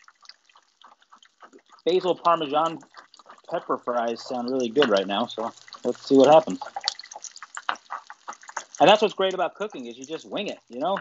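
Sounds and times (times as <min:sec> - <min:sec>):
fish frying in oil: 0:00.0 - 0:11.0.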